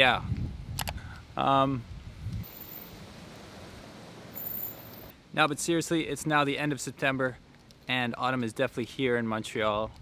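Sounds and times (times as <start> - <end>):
rustling leaves: 0.0 - 9.8.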